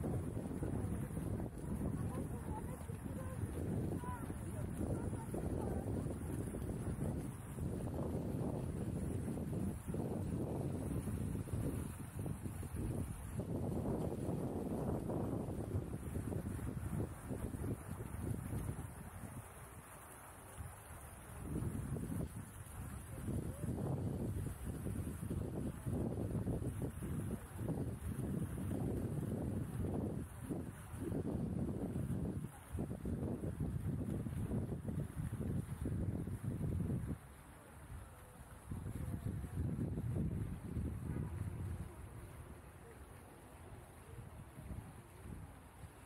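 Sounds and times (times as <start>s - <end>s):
wind buffeting microphone: 0.0s - 19.8s, 21.2s - 42.8s, 44.0s - 46.0s.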